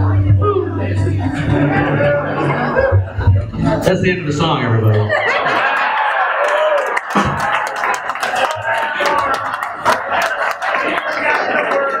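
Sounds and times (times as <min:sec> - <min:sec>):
crowd chattering and cheering: 0:00.0 - 0:12.0.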